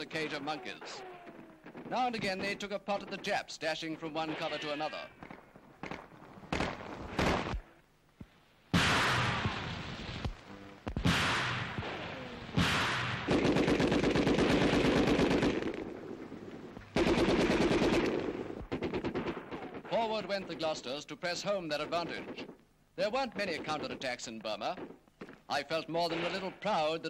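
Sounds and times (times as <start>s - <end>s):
single gunshots ringing: 4.1s - 5.1s, 8.8s - 9.8s, 11.0s - 15.8s, 23.3s - 27.0s
automatic machine-gun fire: 11.0s - 15.9s, 17.0s - 19.9s.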